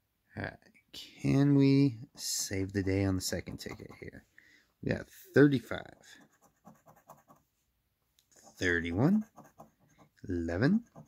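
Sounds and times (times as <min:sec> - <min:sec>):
coin scratching lottery ticket: 0:10.7 - 0:11.0.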